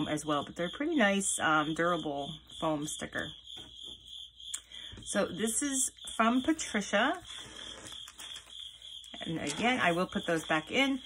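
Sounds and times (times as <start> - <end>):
plastic sleeves rustling: 7.2 - 11.0.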